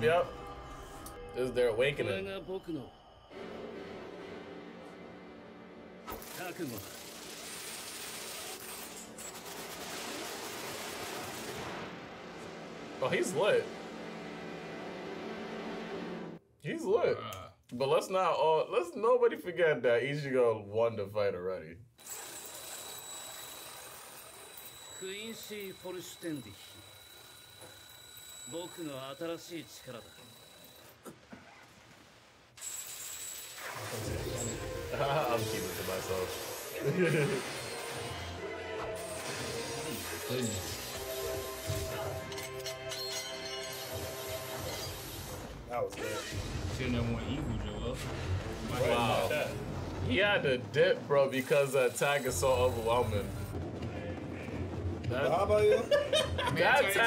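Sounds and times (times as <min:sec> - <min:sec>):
crackling rush of energy: 0:06.1 - 0:13.2
man speaking: 0:48.7 - 0:53.4.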